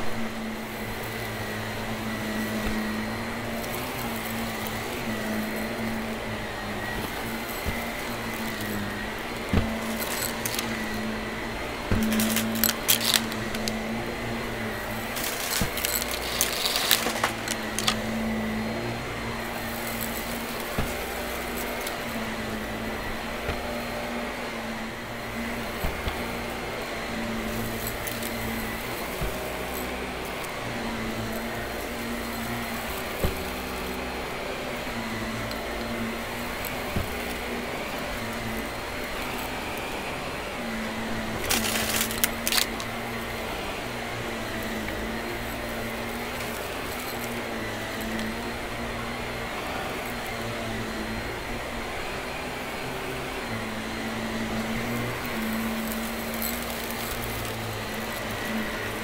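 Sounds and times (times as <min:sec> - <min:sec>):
vacuum cleaner motor: 0:00.0 - 0:59.0
debris crackling in vacuum: 0:11.9 - 0:18.9, 0:41.4 - 0:42.9.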